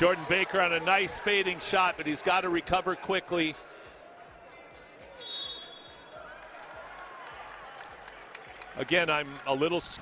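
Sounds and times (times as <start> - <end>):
crowd murmur in a large hall: 0.0 - 10.0
referee's whistle: 5.2 - 6.1.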